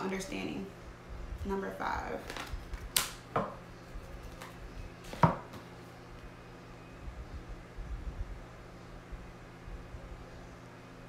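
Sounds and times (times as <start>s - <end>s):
cards being shuffled: 2.2s - 3.2s, 4.0s - 5.6s
cards slapping: 2.3s - 3.2s.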